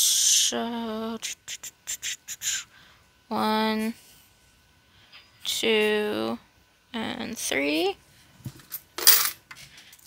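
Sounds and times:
coins clinking: 8.7 - 9.4.

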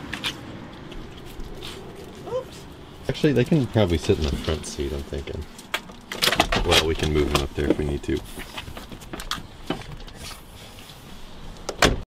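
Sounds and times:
shuffling and rustling: 0.0 - 11.6.

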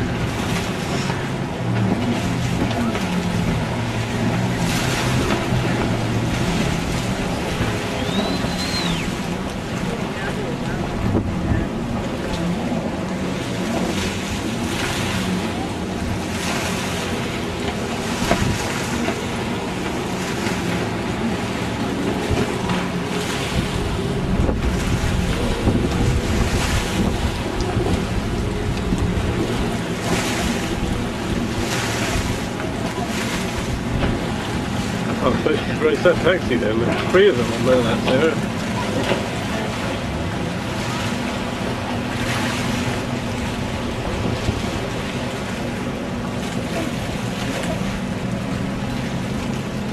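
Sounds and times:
boat engine running: 0.0 - 49.9
rushing water: 0.0 - 49.9
wind buffeting microphone: 0.0 - 49.9.

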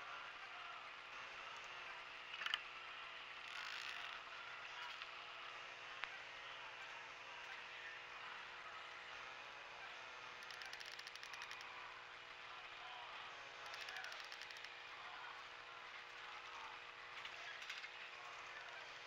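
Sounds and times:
rapid mechanical clicking: 2.3 - 2.6, 3.4 - 4.2, 10.4 - 11.8, 13.6 - 15.4.

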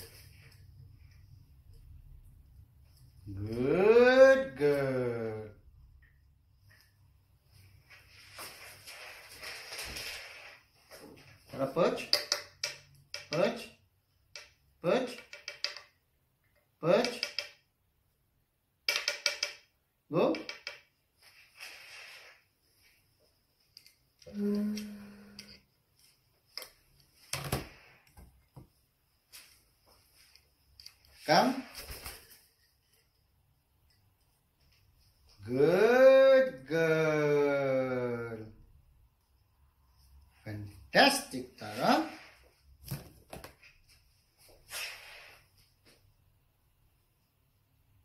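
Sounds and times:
short voice sounds: 3.2 - 5.6, 24.2 - 25.6, 35.4 - 38.6
rustling handling noises: 6.6 - 11.6, 25.8 - 35.4
rustling: 6.8 - 11.5.

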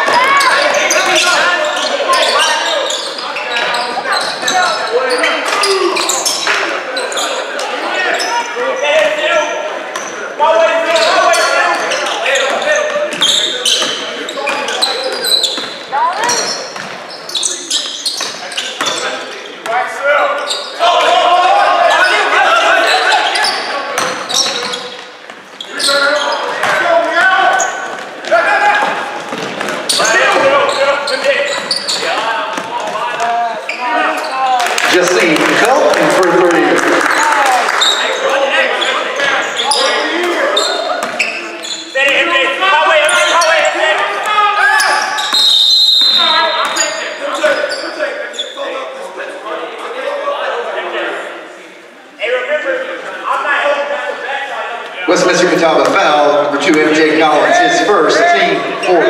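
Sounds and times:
sneakers squeaking: 0.0 - 44.0, 44.7 - 48.9, 55.1 - 59.0
people calling out: 19.9 - 24.9.

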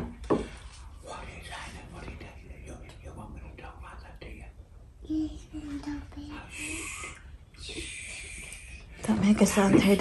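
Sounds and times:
hushed whispering: 0.9 - 9.0.

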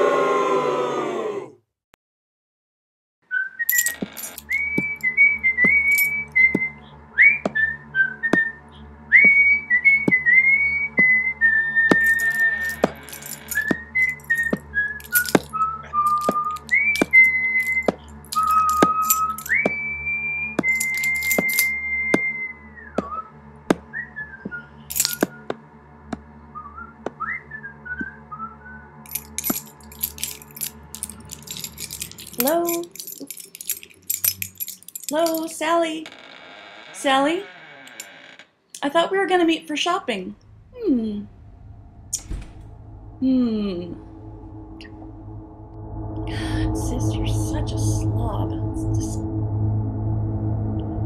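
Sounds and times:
person whistling a tune: 3.3 - 12.6, 13.6 - 23.3
brief clicks or jingles: 3.7 - 5.1, 11.9 - 19.7, 20.6 - 21.7, 24.9 - 25.3, 29.1 - 35.5
low constant hum: 3.8 - 36.0, 38.8 - 51.0.

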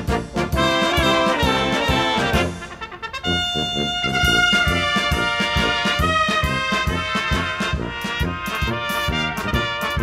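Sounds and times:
brass band music: 0.0 - 10.0.

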